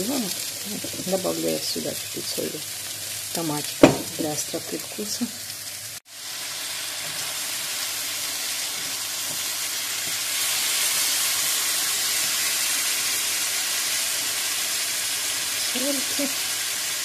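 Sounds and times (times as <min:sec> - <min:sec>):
vegetables sizzling in a frying pan: 0:00.0 - 0:17.0.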